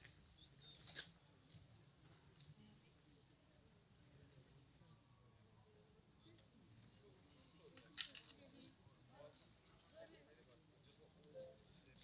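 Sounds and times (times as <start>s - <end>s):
small birds chirping: 0.0s - 7.8s.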